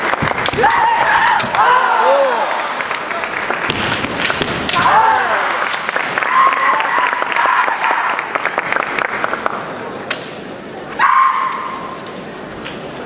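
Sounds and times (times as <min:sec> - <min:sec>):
fencers shouting: 0:00.5 - 0:02.6, 0:04.7 - 0:05.6, 0:11.0 - 0:11.9.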